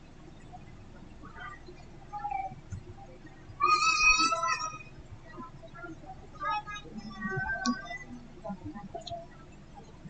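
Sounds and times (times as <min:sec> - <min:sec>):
high-pitched animal call: 0:03.6 - 0:04.9.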